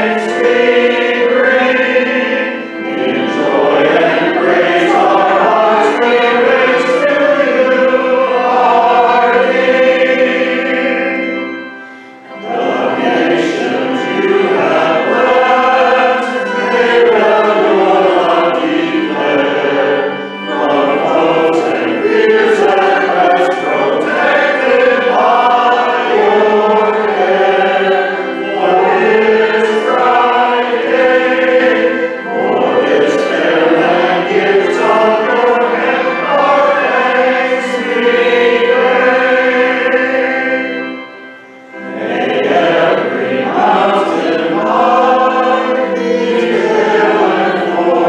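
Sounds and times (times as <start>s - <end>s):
group singing a hymn: 0.0s - 48.0s.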